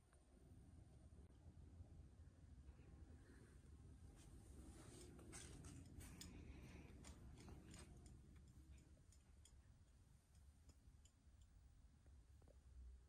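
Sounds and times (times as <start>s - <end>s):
faint clicks and rustles: 4.0s - 12.8s.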